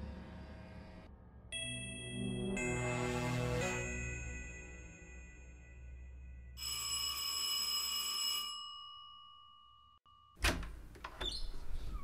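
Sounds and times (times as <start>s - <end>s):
doorbell ringing: 6.6s - 10.8s.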